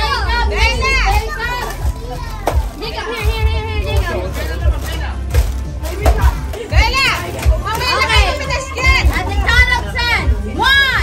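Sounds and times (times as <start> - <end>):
children shouting and squealing: 0.0 - 3.8
background music: 0.0 - 11.0.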